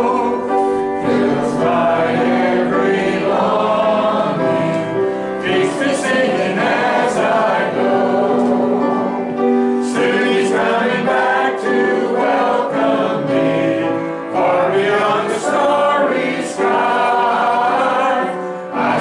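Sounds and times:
mixed choir singing a hymn: 0.0s - 19.0s.

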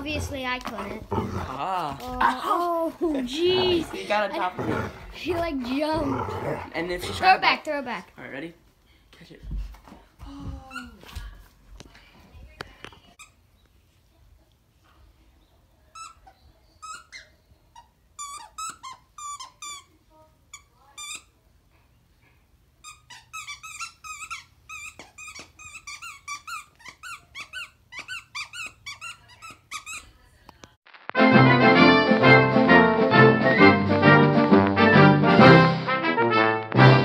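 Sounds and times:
squeaky dog toy squeaking: 15.9s - 21.4s, 22.8s - 30.2s.

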